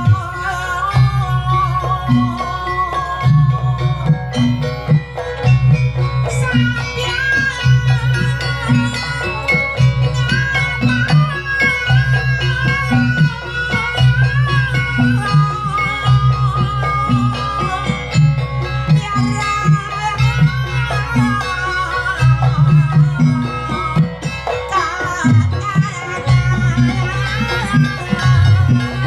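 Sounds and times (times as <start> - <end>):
gamelan ensemble playing: 0.0 - 29.0
metallophones and drums: 0.0 - 29.0
wavering high melody: 0.0 - 29.0.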